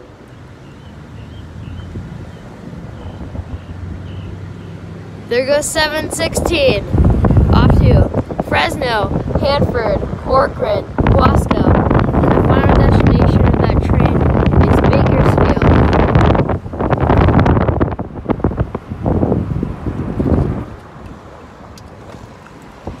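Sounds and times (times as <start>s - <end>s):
road noise: 0.0s - 23.0s
wind buffeting microphone: 0.0s - 23.0s.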